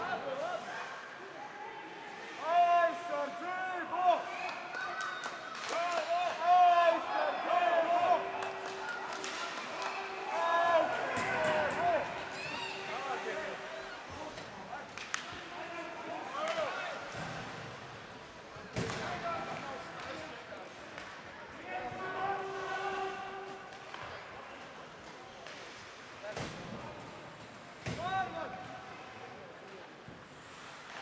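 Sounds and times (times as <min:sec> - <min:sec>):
players shouting: 0:05.7 - 0:14.1
stick and puck hits on ice: 0:14.9 - 0:15.5.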